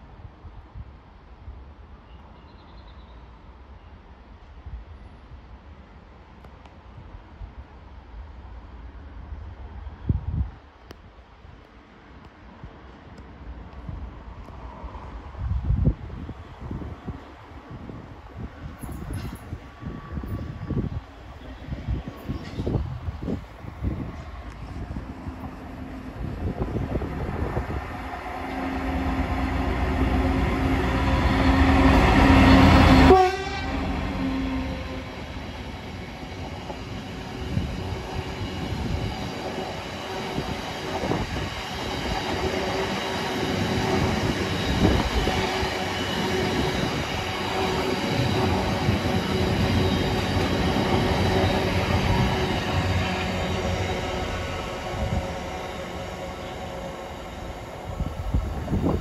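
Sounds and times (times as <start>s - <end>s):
diesel locomotive passing: 14.3s - 59.0s.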